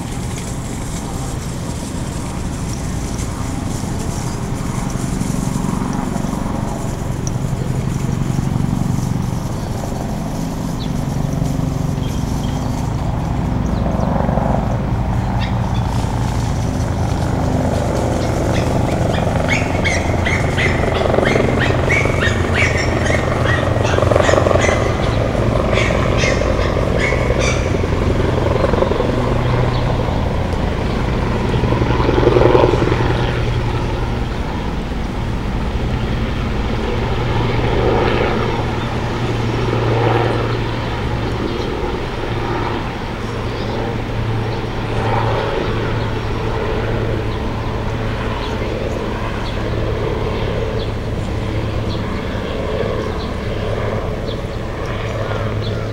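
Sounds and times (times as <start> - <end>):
building machinery hum: 0.0 - 55.9
traffic: 0.0 - 55.9.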